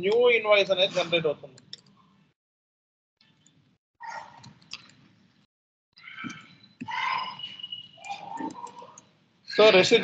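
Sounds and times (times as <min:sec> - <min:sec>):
computer keyboard typing: 0:08.0 - 0:09.2.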